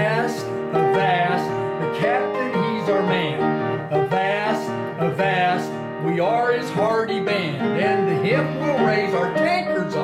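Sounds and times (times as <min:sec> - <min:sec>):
held instrumental notes: 0:00.0 - 0:10.0
man singing: 0:00.0 - 0:10.0.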